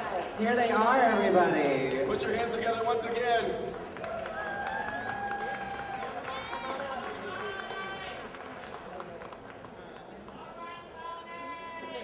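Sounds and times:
scattered clapping: 0.0 - 2.6, 3.6 - 10.5
whoops: 4.0 - 6.9.

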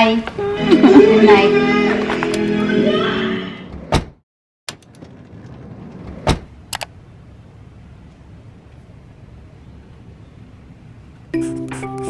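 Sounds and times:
quick clicks: 6.7 - 6.9.

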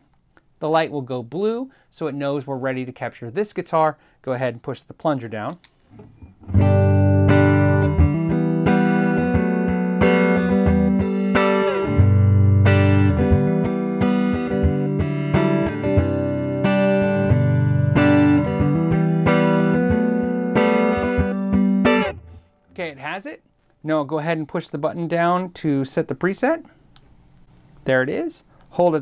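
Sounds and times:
clean electric guitar playing: 6.2 - 22.6.

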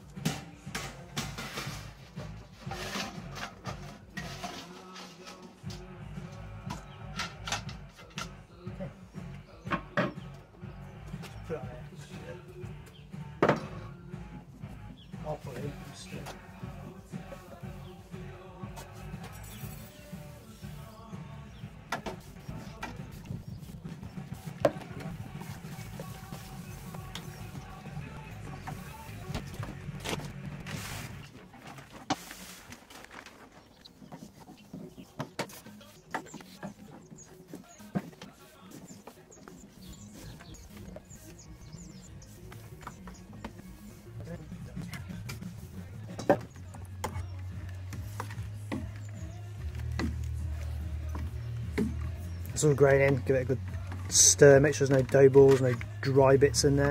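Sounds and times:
background music: 0.0 - 56.9.

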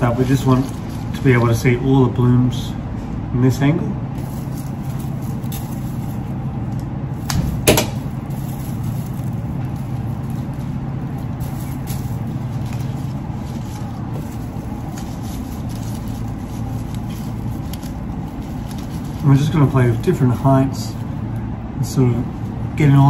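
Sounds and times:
low machinery hum: 0.0 - 23.0.

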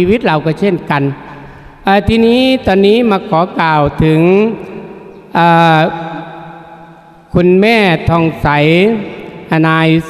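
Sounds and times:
monk chanting through microphone: 0.0 - 10.0
voice echo: 0.0 - 10.0.

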